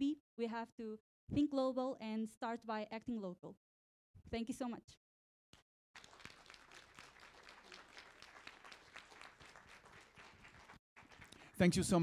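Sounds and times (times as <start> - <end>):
faint applause: 6.0 - 12.0.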